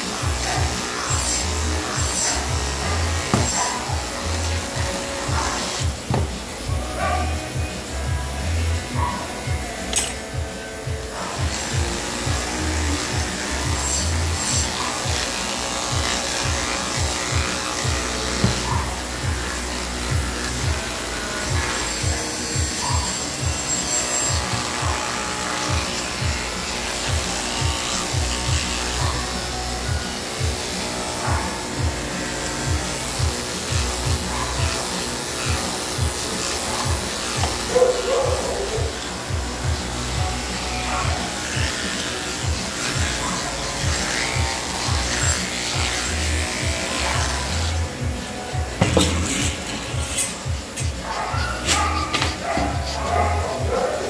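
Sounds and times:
background music with a beat: 0:00.0 - 0:15.2, 0:29.7 - 0:34.8, 0:35.5 - 0:43.2, 0:43.8 - 0:54.0
electric clipper humming: 0:00.0 - 0:54.0.

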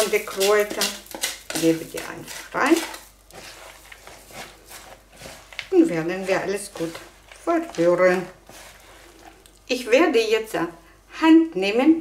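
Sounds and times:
knife scraping a plastic bowl: 0:00.0 - 0:09.5
spoon stirring wet mixture: 0:00.0 - 0:10.3.

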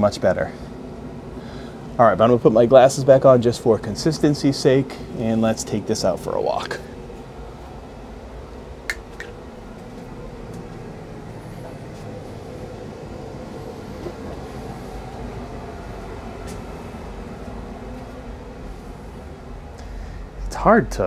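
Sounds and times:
faint hum: 0:00.0 - 0:21.0.

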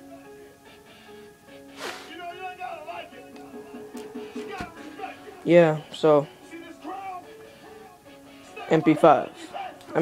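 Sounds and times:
background music with sustained notes: 0:00.0 - 0:10.0.

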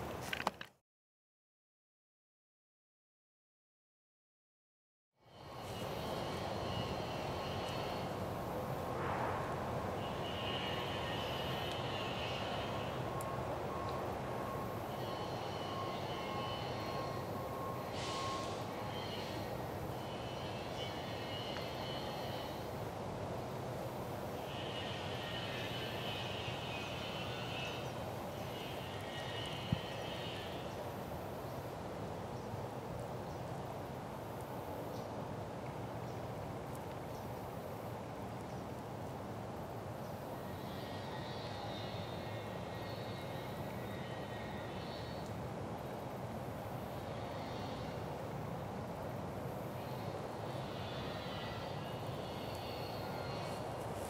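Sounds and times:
faint thin tone: 0:09.9 - 0:22.7.

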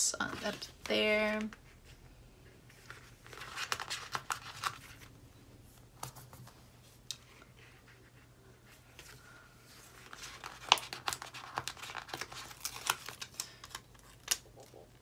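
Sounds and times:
paper sticker crinkling and crackling: 0:02.8 - 0:05.1, 0:09.9 - 0:15.0.

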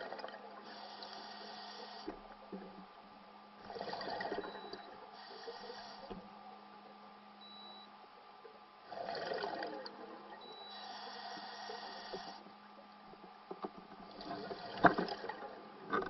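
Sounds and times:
faint steady hum: 0:00.0 - 0:16.0
regulator inhale hiss: 0:00.6 - 0:02.2, 0:05.1 - 0:06.2, 0:10.6 - 0:12.5.

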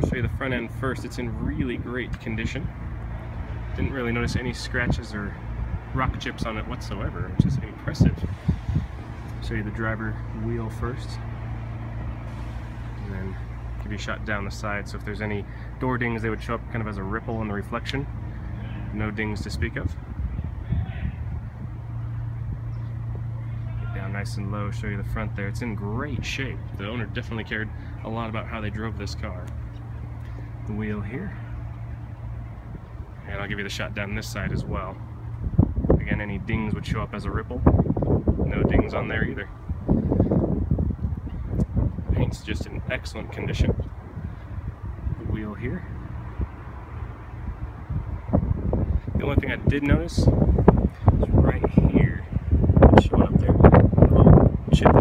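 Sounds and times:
steady low hum: 0:00.0 - 0:55.0
wind buffeting microphone: 0:00.0 - 0:55.0.

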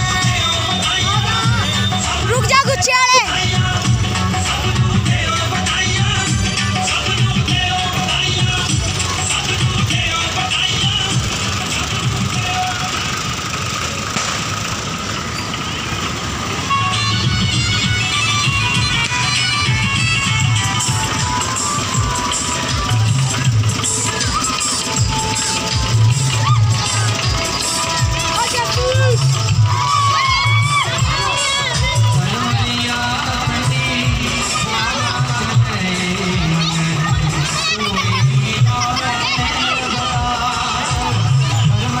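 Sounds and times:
children shouting and cheering: 0:00.0 - 0:04.6, 0:17.2 - 0:42.0
music playing: 0:00.0 - 0:14.3, 0:16.2 - 0:42.0
road noise: 0:00.0 - 0:42.0
tractor engines rumbling: 0:00.0 - 0:42.0.

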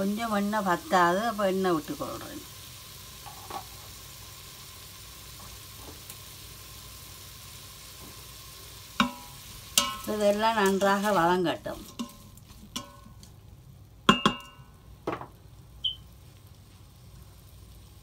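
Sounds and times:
vegetables sizzling in hot oil: 0:00.0 - 0:18.0
wooden spoon knocking on pot: 0:14.1 - 0:15.3.

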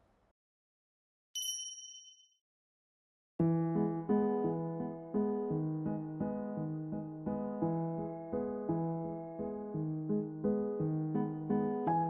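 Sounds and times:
bright chime: 0:01.4 - 0:02.3.

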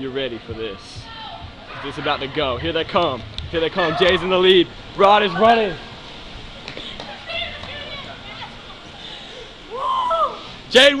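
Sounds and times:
distant raised voices: 0:00.0 - 0:10.7.

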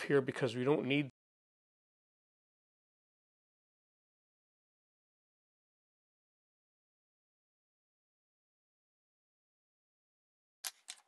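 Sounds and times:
man's voice: 0:00.0 - 0:01.1.

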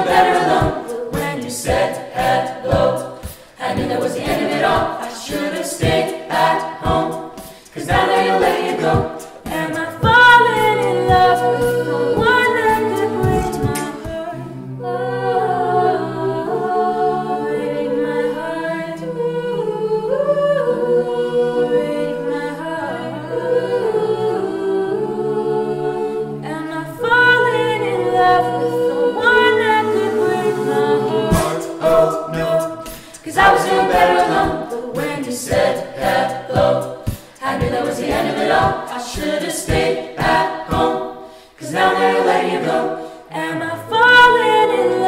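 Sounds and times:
beatboxed kick-drum hits: 0:00.0 - 0:14.3, 0:31.2 - 0:42.2
a cappella group singing chords: 0:00.0 - 0:45.0
vocal percussion: 0:00.0 - 0:45.0
lead voice sliding down in pitch: 0:31.4 - 0:32.9.

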